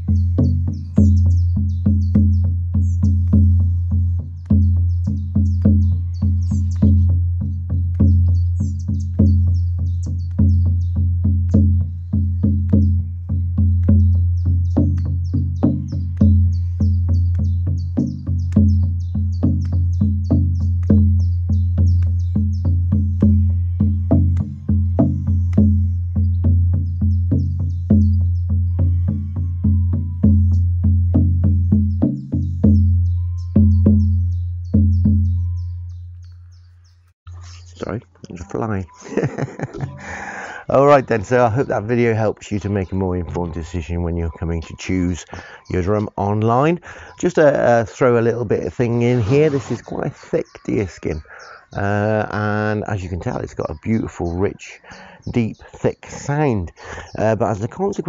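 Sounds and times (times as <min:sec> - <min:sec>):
frame drum beating: 0:00.0 - 0:35.5.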